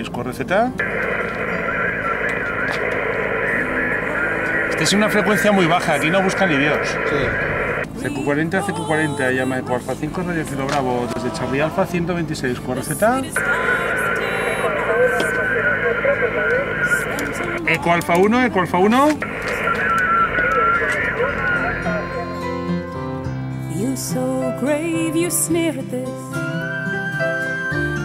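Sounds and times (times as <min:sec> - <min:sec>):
radio static hiss: 0:00.8 - 0:08.3, 0:12.8 - 0:22.3
faint garbled radio voices: 0:00.8 - 0:22.8.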